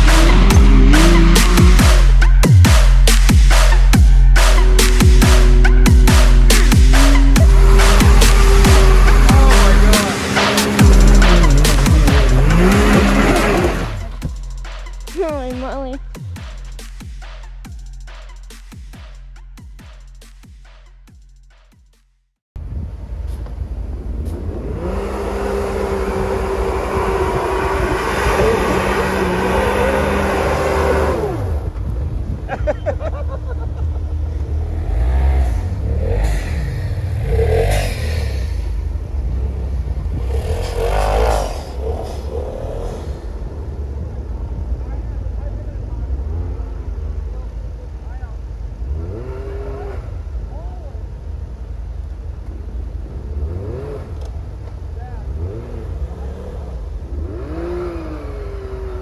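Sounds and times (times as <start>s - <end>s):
engine revving hard: 0.0s - 14.2s, 24.4s - 31.7s, 34.5s - 43.5s, 48.8s - 50.2s, 53.1s - 54.3s, 55.3s - 59.0s.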